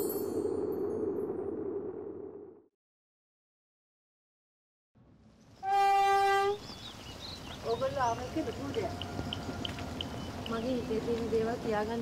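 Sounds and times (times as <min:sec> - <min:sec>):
train horn blast: 0:05.6 - 0:06.6.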